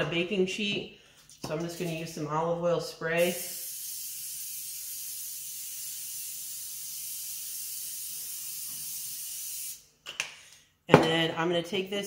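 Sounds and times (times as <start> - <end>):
aerosol spray hissing: 3.2 - 9.8.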